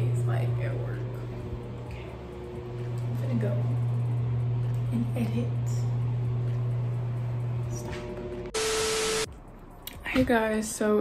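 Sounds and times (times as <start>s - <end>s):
low hum: 0.0s - 9.7s
static white noise burst: 8.6s - 9.3s
steady tone: 8.6s - 9.3s.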